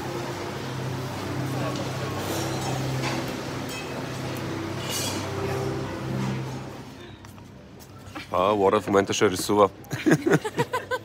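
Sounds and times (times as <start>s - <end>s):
music: 0.0s - 7.1s
crockery clinking: 2.2s - 5.4s.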